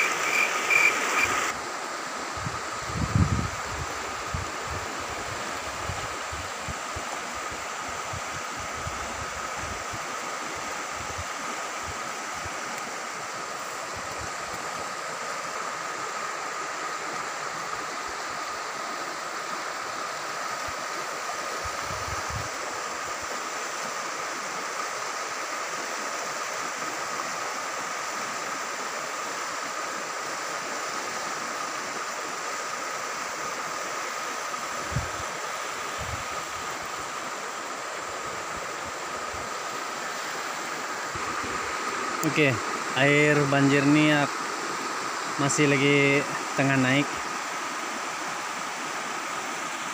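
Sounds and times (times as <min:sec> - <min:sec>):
thin high tone: 0:00.0 - 0:01.5
floodwater rushing down river: 0:00.0 - 0:49.9.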